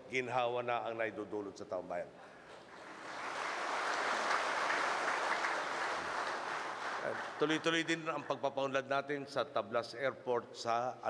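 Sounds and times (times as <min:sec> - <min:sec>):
audience applauding: 0:02.7 - 0:08.3.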